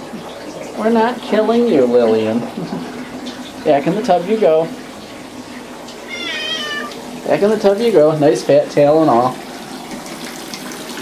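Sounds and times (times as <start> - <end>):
cat meowing high-pitched: 6.1 - 7.0.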